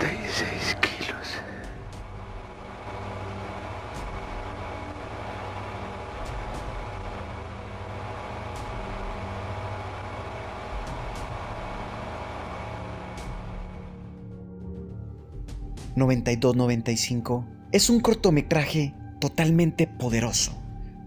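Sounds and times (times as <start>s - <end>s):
low rumbling drone: 0.0s - 21.0s.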